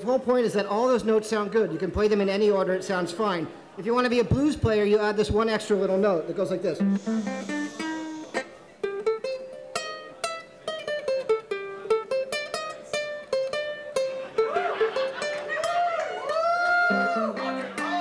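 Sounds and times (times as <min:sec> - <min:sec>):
ukulele playing a scale: 0:06.7 - 0:18.0.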